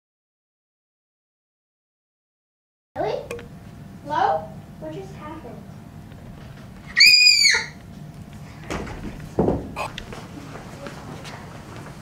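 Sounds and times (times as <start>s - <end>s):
child shrieking: 6.9s - 7.8s.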